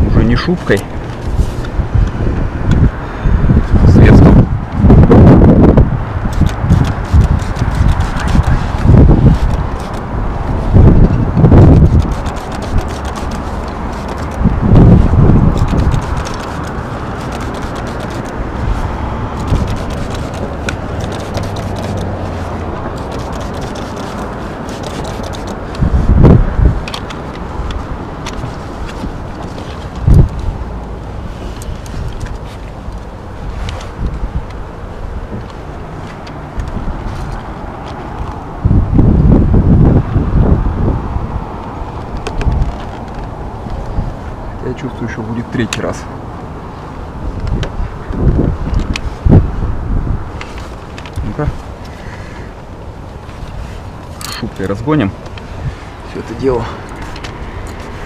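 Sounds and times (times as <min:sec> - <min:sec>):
wind buffeting microphone: 0:00.0 - 0:44.8, 0:46.1 - 0:58.0.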